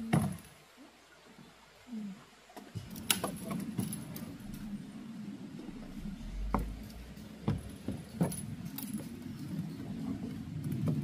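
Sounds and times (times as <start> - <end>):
camping gear clinking: 2.8 - 4.7, 6.6 - 11.0.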